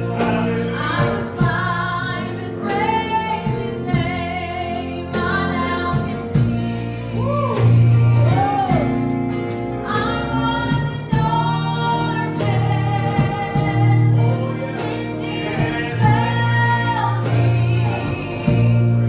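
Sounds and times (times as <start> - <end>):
man and woman singing: 0.0 - 9.1, 9.9 - 19.0
church band playing: 0.0 - 19.0
steady bass line: 0.0 - 19.0.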